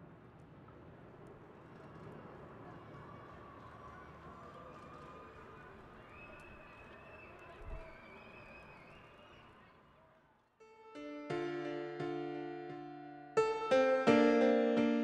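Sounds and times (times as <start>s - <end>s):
piano music: 10.7s - 15.0s.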